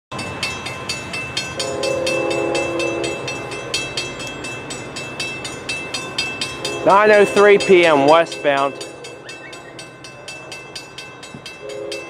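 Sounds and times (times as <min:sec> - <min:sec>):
railroad crossing bell ringing: 0:00.1 - 0:12.0
distant locomotive horn: 0:01.6 - 0:03.6, 0:06.6 - 0:09.9, 0:11.6 - 0:12.0.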